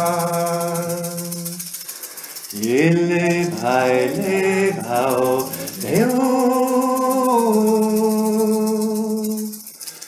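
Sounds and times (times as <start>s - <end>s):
person chanting: 0.0s - 1.7s, 2.5s - 9.7s
rattle shaken rhythmically: 0.0s - 10.0s.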